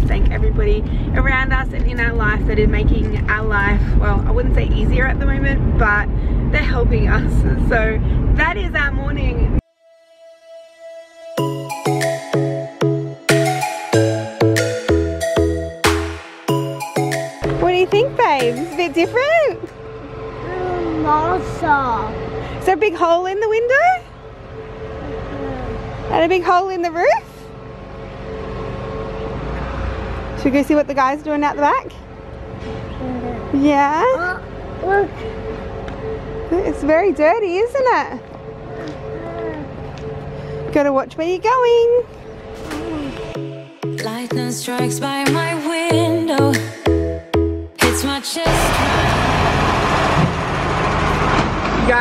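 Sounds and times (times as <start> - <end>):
engine rumbling with hum: 0.0 - 9.6, 48.5 - 52.0
truck engine rumbling: 0.0 - 9.6, 11.4 - 43.7, 48.0 - 52.0.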